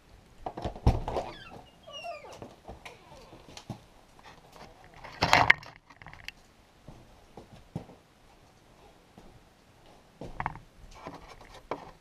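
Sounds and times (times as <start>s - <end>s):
animal whining: 1.2s - 3.6s.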